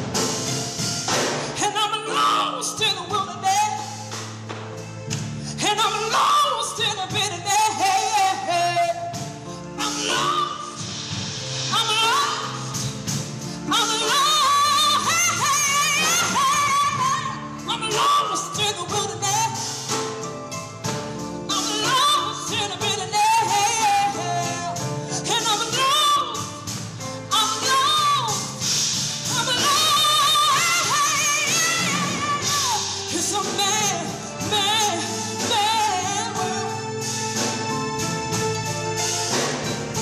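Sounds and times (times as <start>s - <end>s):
woman singing: 1.4s - 4.2s, 5.4s - 11.0s, 11.7s - 37.2s.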